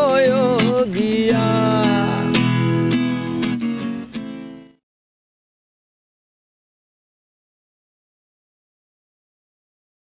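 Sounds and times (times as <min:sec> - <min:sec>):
acoustic guitar strumming chords: 0:00.0 - 0:04.8.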